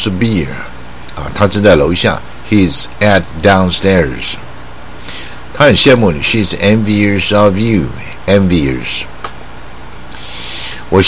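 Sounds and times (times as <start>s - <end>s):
man speaking: 0.0s - 4.5s, 5.1s - 9.2s, 10.2s - 11.0s
low electrical hum: 0.0s - 11.0s
man breathing in: 5.0s - 5.5s, 10.1s - 10.9s.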